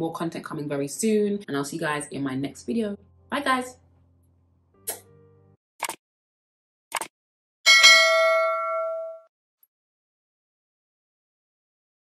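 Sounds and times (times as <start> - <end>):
notification bell chime: 7.7 - 9.2.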